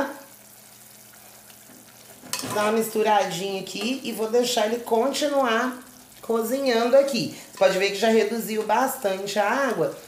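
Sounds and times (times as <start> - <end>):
pot of water boiling: 0.0 - 10.0.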